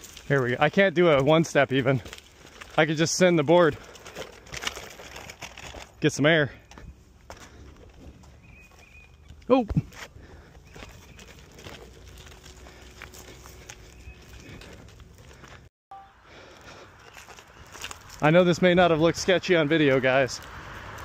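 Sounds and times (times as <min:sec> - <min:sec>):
wheels rolling on rocky trail: 0:00.0 - 0:15.7, 0:16.3 - 0:21.0.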